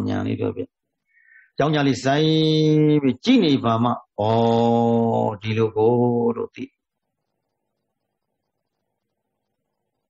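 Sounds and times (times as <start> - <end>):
man chanting: 0.0 - 0.8, 1.6 - 6.8.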